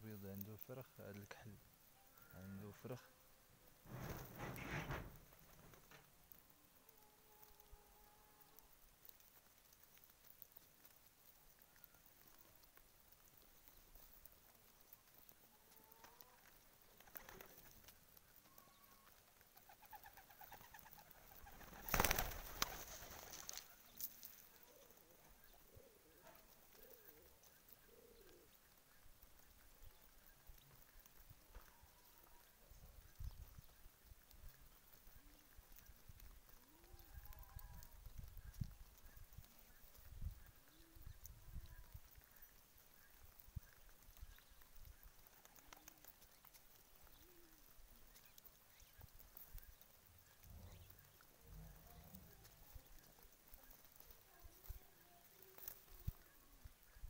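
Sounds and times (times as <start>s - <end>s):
loud rustle: 3.8s - 6.1s, 19.6s - 24.8s
pigeons cooing: 18.5s - 28.8s, 44.5s - 48.2s.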